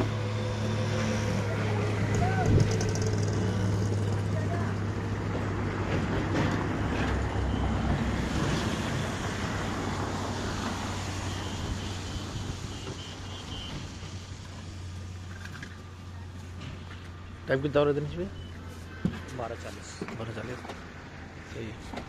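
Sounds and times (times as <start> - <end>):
vehicle engine humming: 0.0 - 22.0.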